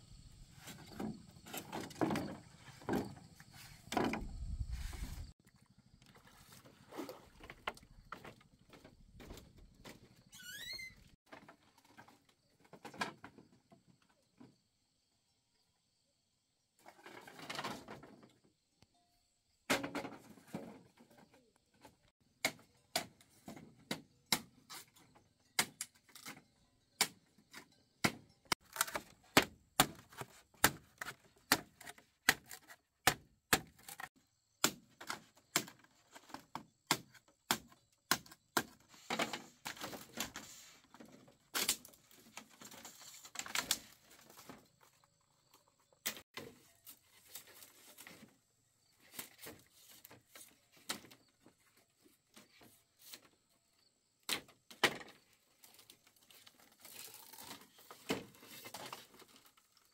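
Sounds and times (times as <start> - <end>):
rustling scrapes: 4.6 - 5.4
machete hacking bamboo: 28.0 - 35.9, 36.9 - 38.8.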